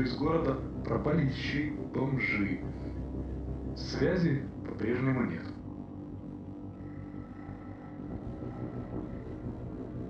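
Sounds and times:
low ambient drone: 0.0 - 10.0.

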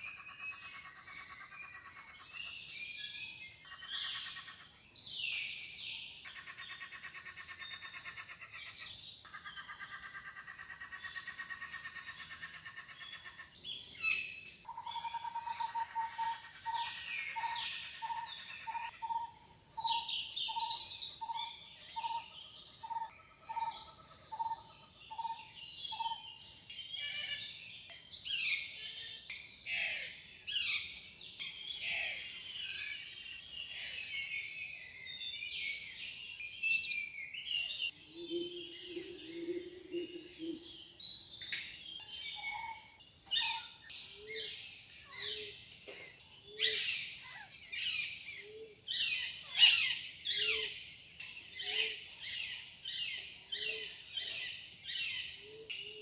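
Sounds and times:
birds chirping and whistling: 0.0 - 56.0.

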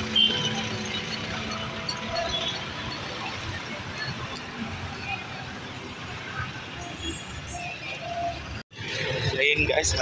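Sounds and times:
traffic noise: 0.0 - 10.0.

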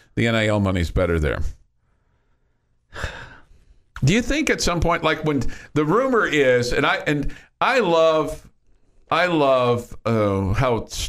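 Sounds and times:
person breathing into microphone: 1.8 - 3.9.

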